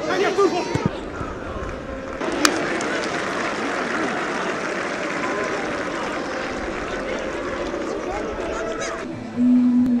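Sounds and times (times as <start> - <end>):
crowd shouts: 0.0 - 9.1
football crowd noise: 0.0 - 9.4.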